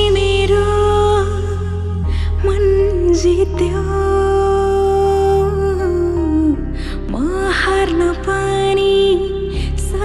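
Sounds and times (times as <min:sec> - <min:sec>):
person singing a love song: 0:00.0 - 0:10.0
soft backing music: 0:00.0 - 0:10.0.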